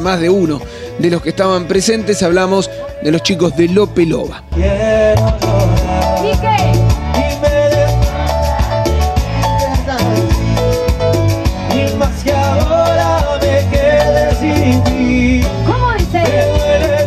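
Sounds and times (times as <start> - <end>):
live dance band playing: 0.0 - 17.0
man singing: 0.0 - 17.0
percussion beat: 0.0 - 17.0.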